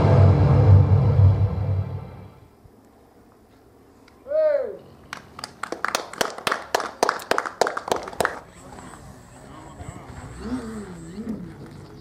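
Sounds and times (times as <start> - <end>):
people clapping: 5.1 - 8.6.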